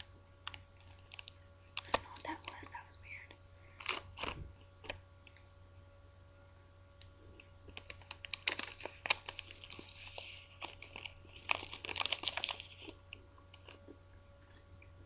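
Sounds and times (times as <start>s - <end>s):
plastic package crinkling: 0.0s - 5.4s, 7.3s - 14.6s.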